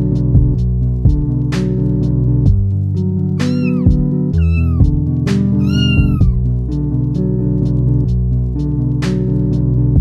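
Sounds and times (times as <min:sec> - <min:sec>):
background music: 0:00.0 - 0:10.0
kitten meowing: 0:03.4 - 0:06.5.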